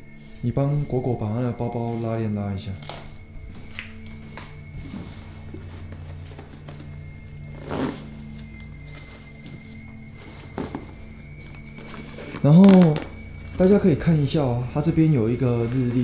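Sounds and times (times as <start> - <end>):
low drone music: 0.0 - 16.0
backpack rustling and zipping: 3.2 - 14.2.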